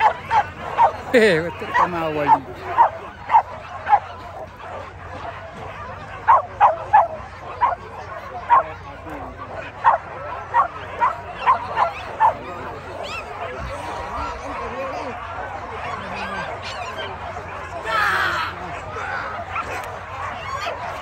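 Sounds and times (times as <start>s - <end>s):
dog yelping: 0.0s - 4.1s, 5.7s - 7.8s, 8.4s - 8.8s, 9.8s - 13.4s.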